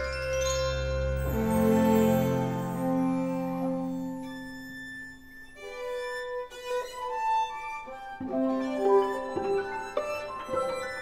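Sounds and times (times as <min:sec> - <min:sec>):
string ensemble playing: 0:00.8 - 0:11.0.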